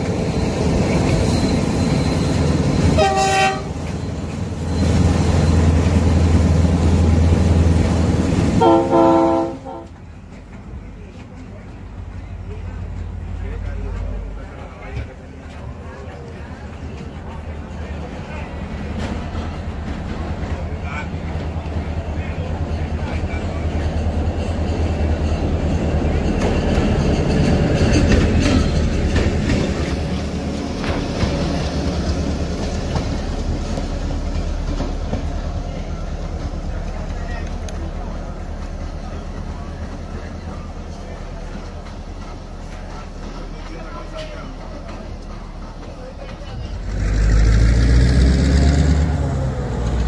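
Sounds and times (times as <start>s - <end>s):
diesel locomotive passing: 0.0s - 50.0s.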